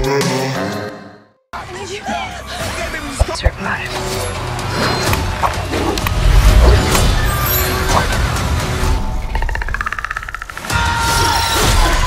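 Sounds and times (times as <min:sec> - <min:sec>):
film trailer score: 0:00.0 - 0:12.0.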